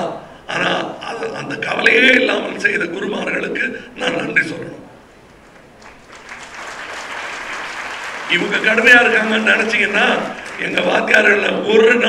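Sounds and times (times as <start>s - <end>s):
audience applause: 5.4s - 11.0s.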